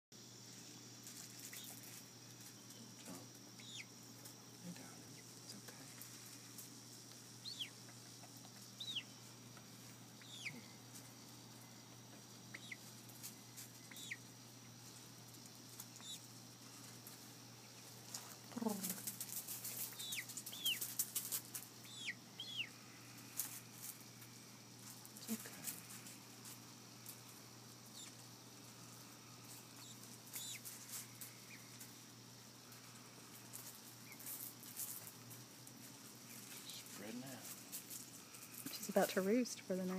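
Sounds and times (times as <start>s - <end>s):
chicken peeping: 1.4s - 2.0s, 2.6s - 4.0s, 7.3s - 16.9s, 17.6s - 23.6s, 27.8s - 28.3s, 29.4s - 32.0s, 32.7s - 34.4s
feathers rustling and wings flapping: 17.9s - 21.8s.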